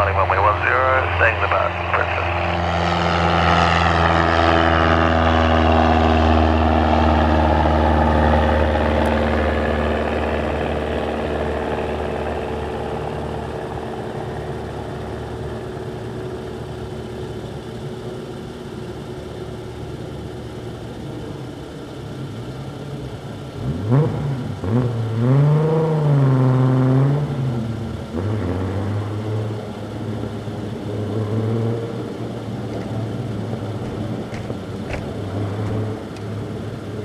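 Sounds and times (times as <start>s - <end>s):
propeller plane engine climbing: 0.0s - 37.0s.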